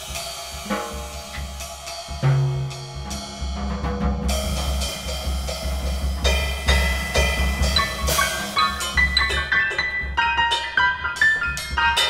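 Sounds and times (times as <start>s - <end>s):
drum kit with cymbal strikes: 0.0s - 12.0s
piano notes: 0.7s - 12.0s.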